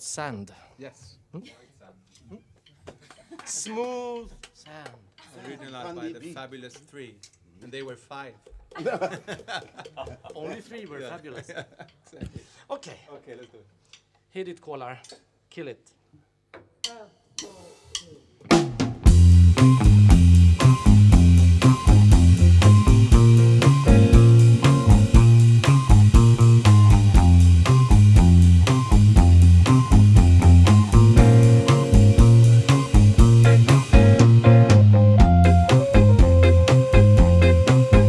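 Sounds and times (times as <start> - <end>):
reggae band playing: 17.4 - 38.0
heavy bass line: 19.1 - 38.0.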